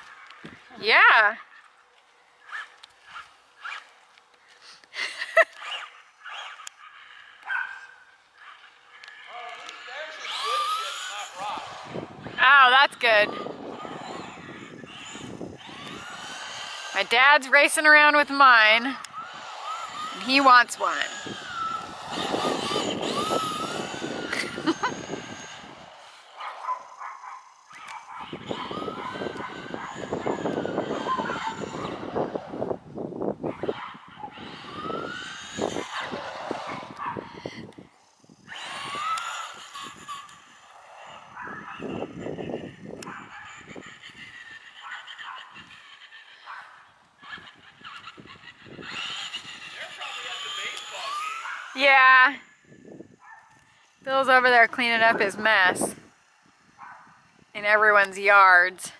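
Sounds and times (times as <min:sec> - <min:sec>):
rc truck motors whining: 0:00.0 - 0:58.9.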